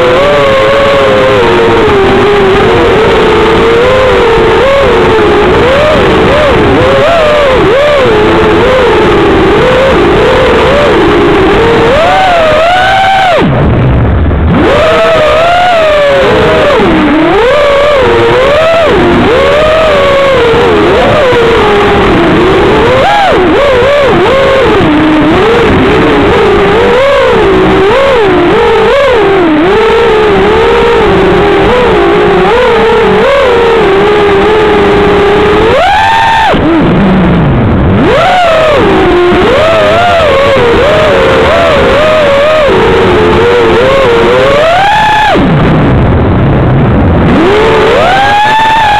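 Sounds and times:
drone motors whining: 0.0 - 48.9.

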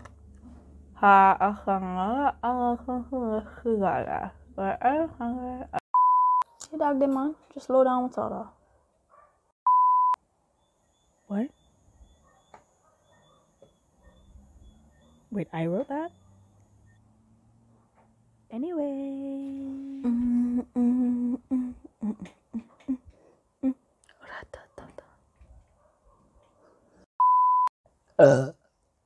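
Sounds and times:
censor bleep: 5.9 - 6.5, 9.7 - 10.2, 27.2 - 27.7
woman whispering: 23.6 - 25.2.

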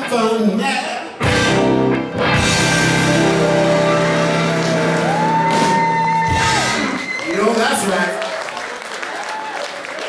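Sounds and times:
rock band holding final chord: 1.2 - 6.8
high guitar note bending upward: 1.2 - 7.0.

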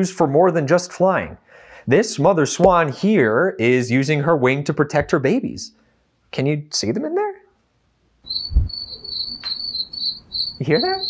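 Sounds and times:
cricket chirping: 8.3 - 11.0
soft low thump: 8.5 - 8.7.

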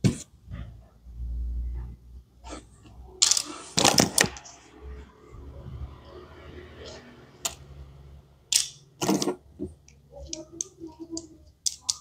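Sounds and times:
plastic toy pieces clicking: 10.2 - 12.0.

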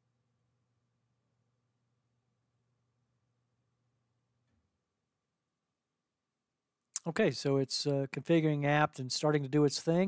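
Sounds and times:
man speaking: 7.0 - 10.0.

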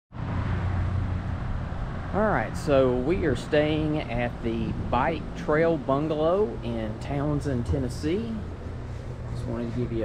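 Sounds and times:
fan rushing: 0.2 - 10.0
air conditioner hum: 0.4 - 10.0.

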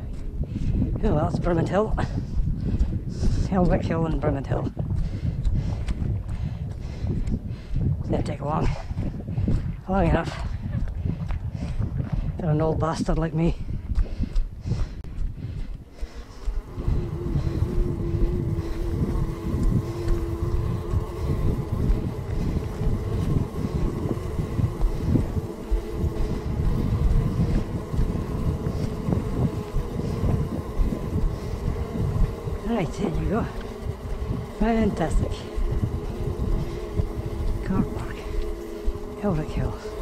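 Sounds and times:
wind buffeting microphone: 0.0 - 40.0
faint steady hum: 14.4 - 40.0.

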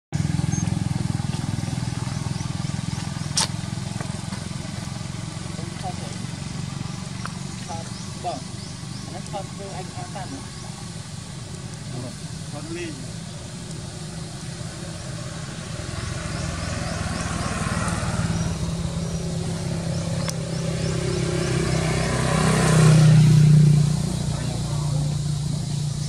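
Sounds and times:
vehicle engine hum: 0.1 - 26.0.

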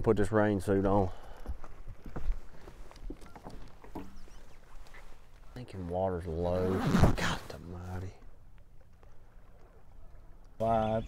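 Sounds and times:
knocks and rustling on boat deck: 1.5 - 5.0.

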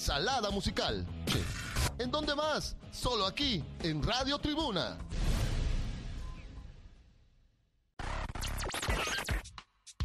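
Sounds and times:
radio jingle: 8.0 - 9.5
turntable scratching: 8.0 - 10.0.

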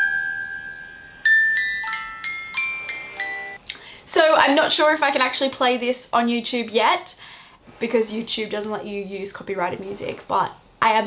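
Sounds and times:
music box melody: 0.0 - 3.6.

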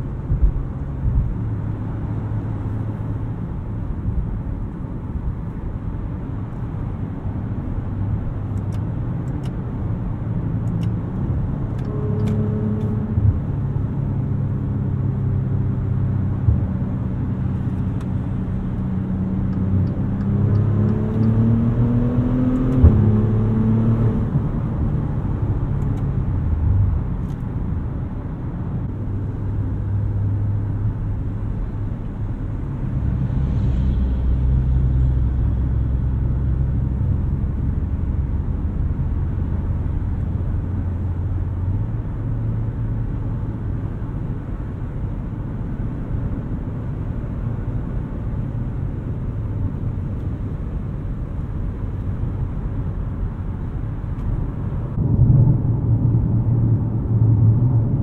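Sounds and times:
deep low hum: 10.0 - 27.8, 28.8 - 42.3, 52.2 - 58.0.

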